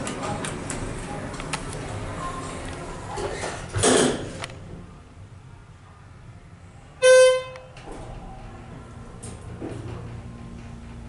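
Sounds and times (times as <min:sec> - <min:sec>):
low hum of elevator car: 0:06.0 - 0:11.0.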